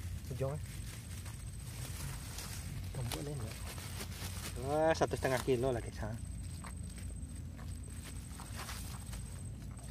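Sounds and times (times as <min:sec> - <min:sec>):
footsteps on dry leaves: 0:00.0 - 0:09.9
steady low rumble: 0:00.0 - 0:09.9.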